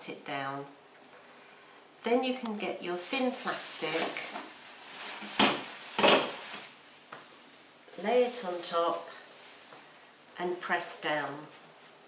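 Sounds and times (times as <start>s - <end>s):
plastic sheet crinkling: 2.8s - 12.0s.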